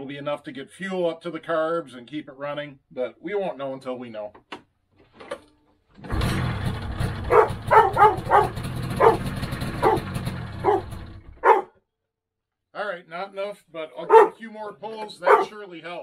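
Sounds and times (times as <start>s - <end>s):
snowmobile engine running: 6.1s - 11.6s
dog barking: 7.3s - 11.8s, 14.1s - 14.4s, 15.2s - 15.6s.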